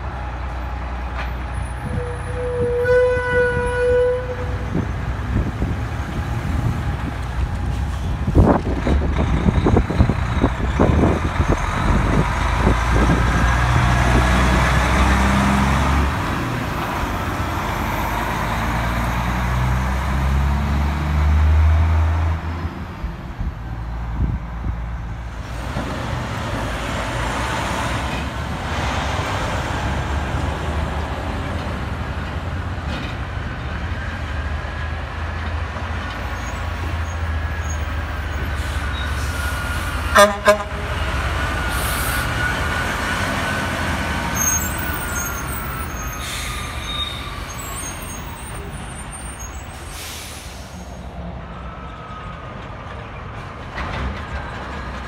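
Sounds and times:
diesel trucks going by: 0.0 - 55.0
diesel truck engine shifting gears: 4.6 - 50.8.

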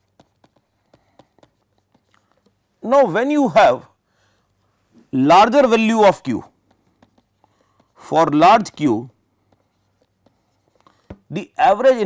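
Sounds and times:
stylus tapping and scratching tablet: 0.0 - 2.9, 5.3 - 12.0.

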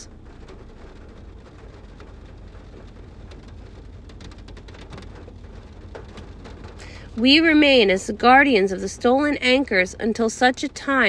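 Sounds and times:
faint scattered ticks and crackles: 0.0 - 11.0
low-level noise: 0.0 - 11.0.

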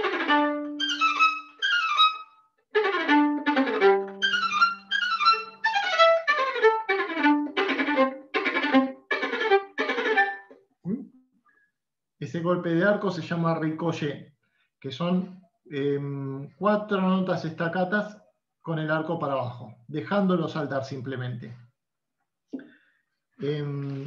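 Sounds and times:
violin staccato notes: 0.0 - 10.6.

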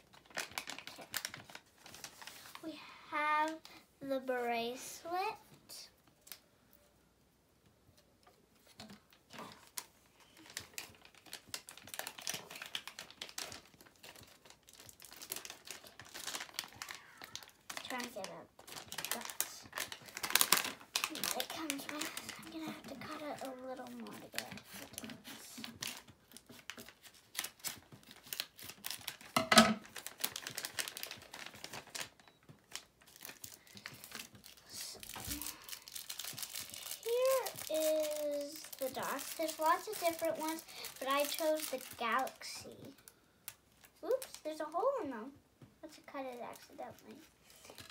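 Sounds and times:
plastic packaging crinkling and tearing: 0.0 - 2.7, 8.6 - 45.0, 45.8 - 47.9.

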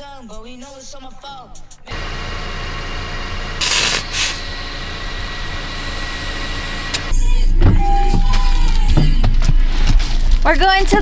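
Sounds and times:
air hissing: 1.8 - 9.9
air compressor running: 1.9 - 10.2.

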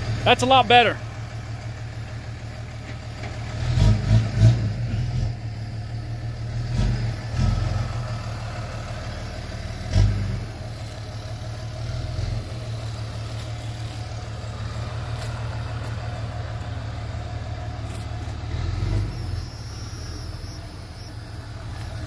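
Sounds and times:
tow truck engine running: 0.0 - 22.0.

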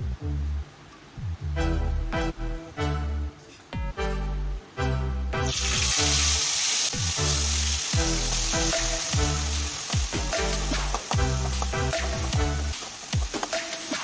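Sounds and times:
paste sizzling in hot oil: 5.4 - 14.0
electronic music with steady beat: 7.5 - 14.0.

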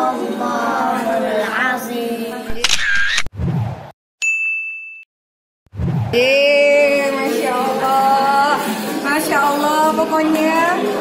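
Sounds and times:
bright ding: 4.2 - 5.1.

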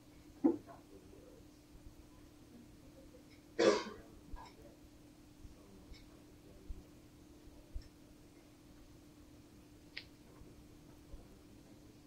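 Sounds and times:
faint steady hum: 0.0 - 12.0
person coughing: 3.6 - 4.0.

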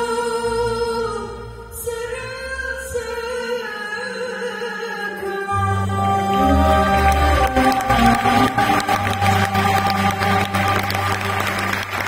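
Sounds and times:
audience applause: 6.4 - 12.0.

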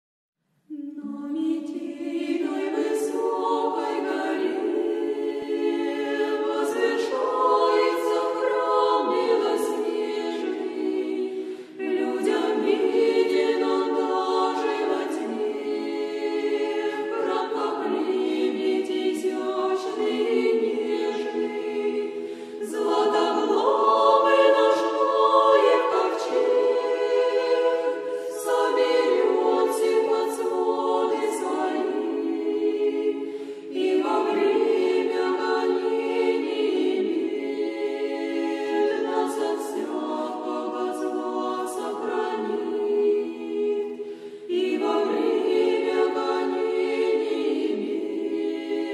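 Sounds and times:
women's choir singing unaccompanied: 0.7 - 48.9.

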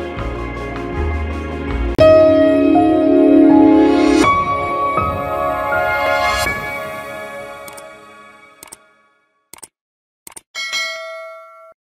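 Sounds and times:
background music: 0.0 - 9.2
double mouse clicks: 9.5 - 9.7, 10.3 - 10.5.

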